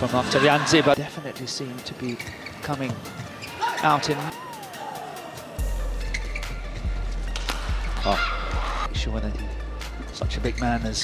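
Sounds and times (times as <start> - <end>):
shoes squeaking on court: 1.9 - 4.3, 6.0 - 8.2
arena music with bass beat: 4.3 - 10.0.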